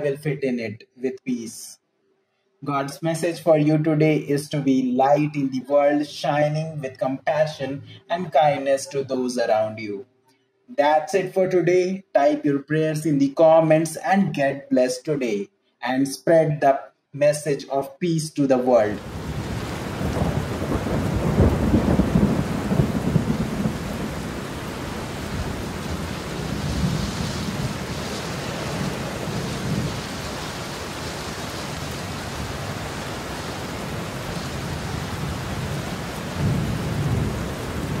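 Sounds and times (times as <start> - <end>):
low thunder rolls: 19.0 - 38.0
steady rain falling: 19.0 - 38.0.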